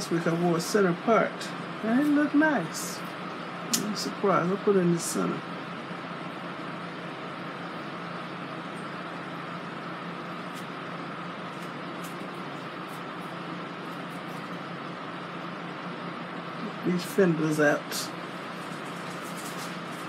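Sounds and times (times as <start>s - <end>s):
air conditioner hum and hiss: 0.0s - 20.0s.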